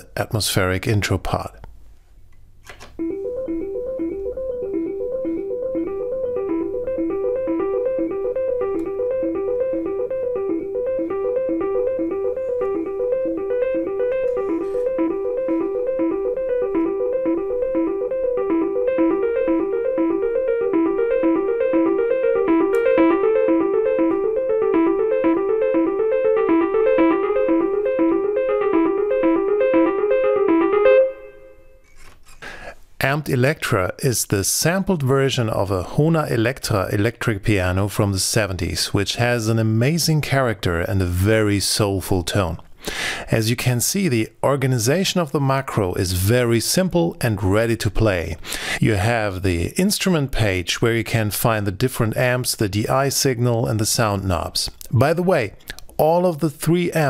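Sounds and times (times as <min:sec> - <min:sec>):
electric piano broken chords: 0:03.0 - 0:31.8.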